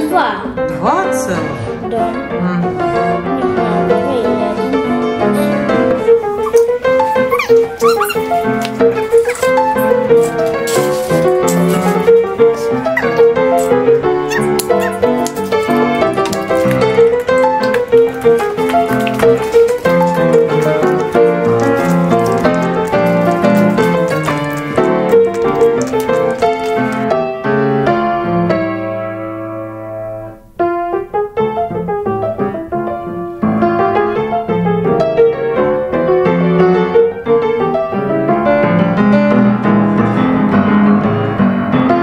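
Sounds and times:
piano music: 0.0 - 42.0.

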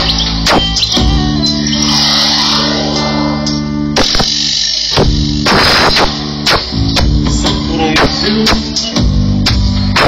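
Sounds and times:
sustained low electronic tones: 0.0 - 9.4
drum hits: 4.0 - 10.0.

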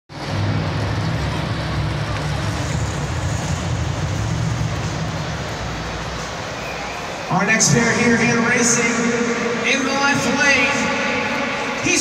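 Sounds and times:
stadium crowd noise: 0.1 - 12.0
truck engines idling: 0.1 - 12.0.

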